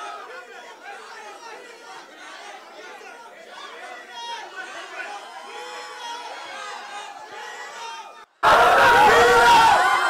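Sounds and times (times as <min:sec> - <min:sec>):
crowd chattering: 0:00.0 - 0:10.0
crowd shouting and cheering: 0:00.0 - 0:10.0.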